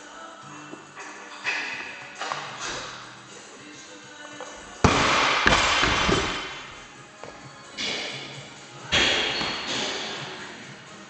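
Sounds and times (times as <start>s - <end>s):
barbell crashing onto floor: 4.8s - 6.8s.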